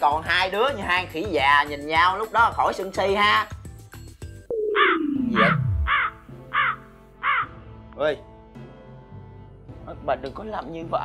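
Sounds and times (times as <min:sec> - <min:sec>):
light background music: 0:00.0 - 0:11.0
falling tone sliding down: 0:04.5 - 0:06.0
crow cawing: 0:04.8 - 0:07.6.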